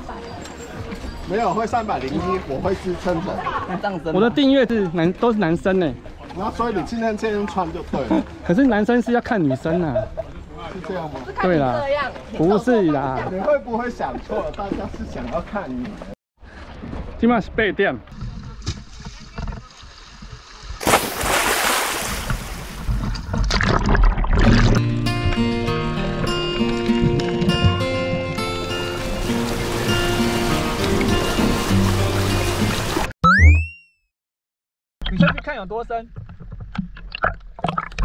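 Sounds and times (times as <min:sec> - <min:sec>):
water splashing and sloshing: 0:00.0 - 0:17.2, 0:18.0 - 0:24.9, 0:26.6 - 0:33.1, 0:35.0 - 0:38.0
splash into water: 0:18.6 - 0:24.8, 0:29.1 - 0:33.1
underwater rushing and bubbling: 0:21.4 - 0:24.8, 0:28.3 - 0:33.1.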